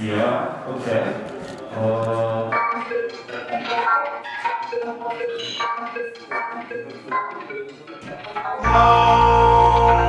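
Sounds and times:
synthesizer stepped notes: 8.6 - 10.0.

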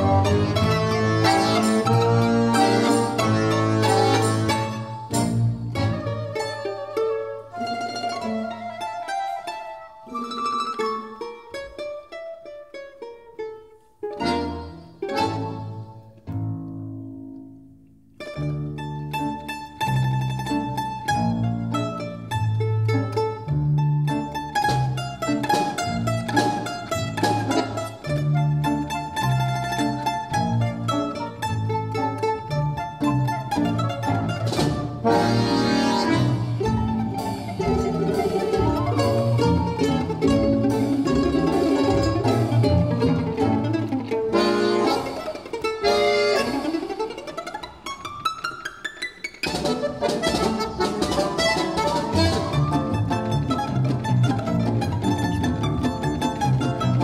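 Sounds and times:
folk instrument orchestra: 0.0 - 57.0.

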